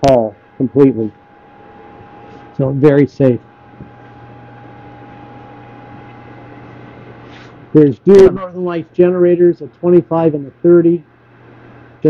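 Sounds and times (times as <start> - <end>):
pump humming with higher tone: 0.0 - 12.0.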